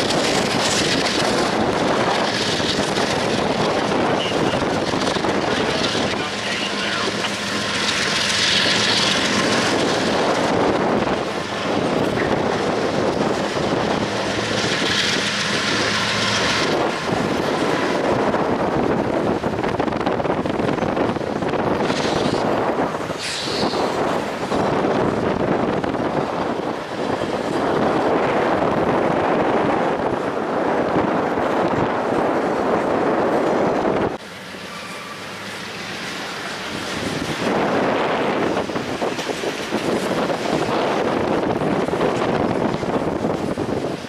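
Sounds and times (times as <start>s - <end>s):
diesel locomotive drone: 0.0s - 44.0s
train wheels rumbling and clattering: 0.0s - 44.0s.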